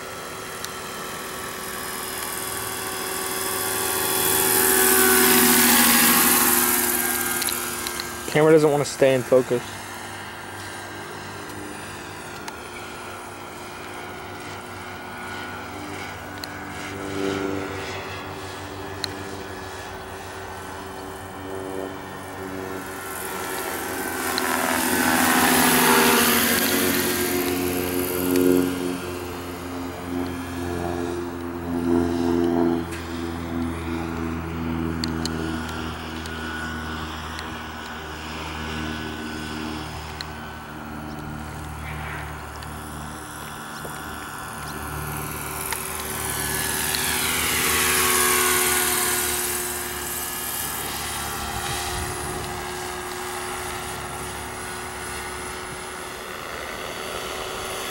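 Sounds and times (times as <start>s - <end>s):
model helicopter flying: 0.0s - 57.9s.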